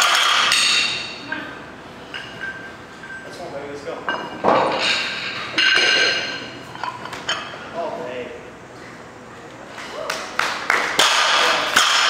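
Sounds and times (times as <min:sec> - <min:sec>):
barbell plates clinking: 0:04.0 - 0:07.6.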